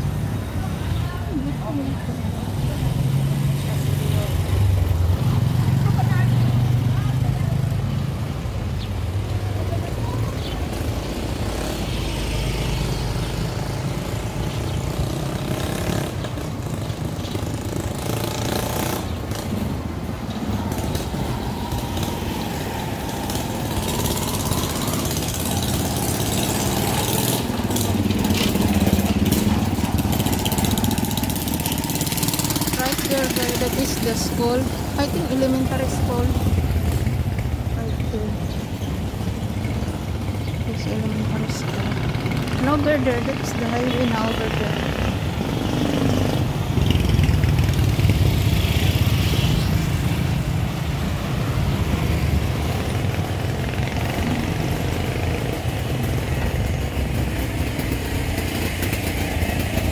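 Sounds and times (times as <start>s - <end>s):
motorcycle engines passing: 0.0s - 59.9s
street noise: 0.0s - 59.9s
indistinct voices: 20.2s - 36.8s, 40.6s - 45.2s.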